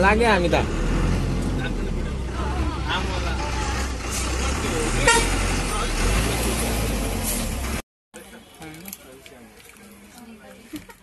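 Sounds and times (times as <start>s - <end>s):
bus engine humming: 0.0s - 7.8s
bus horn toot: 4.9s - 5.6s.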